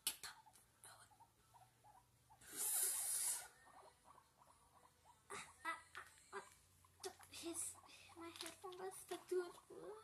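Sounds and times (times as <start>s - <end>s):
guinea pig squeaking: 0.0s - 10.0s.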